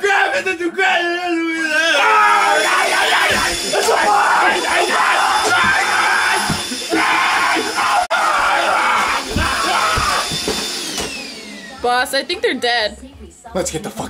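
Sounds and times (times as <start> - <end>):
people yelling and screaming: 0.0 - 11.2.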